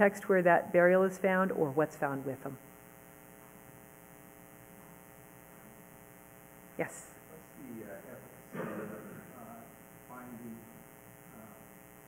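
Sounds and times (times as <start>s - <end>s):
faint mains hum: 0.0s - 12.0s.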